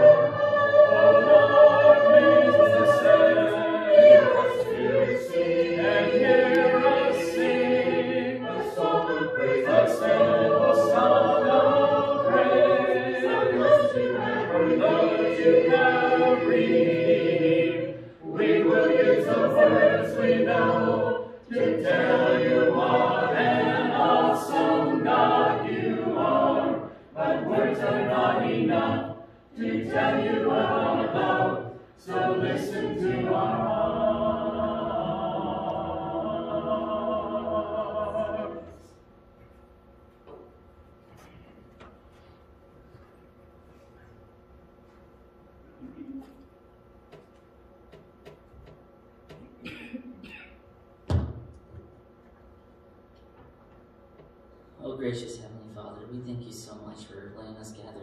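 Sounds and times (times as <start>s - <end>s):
congregation singing a hymn: 0.0s - 39.0s.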